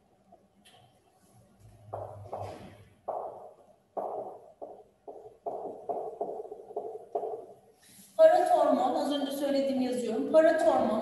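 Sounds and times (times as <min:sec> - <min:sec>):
marker scratching on whiteboard: 0:01.9 - 0:07.6.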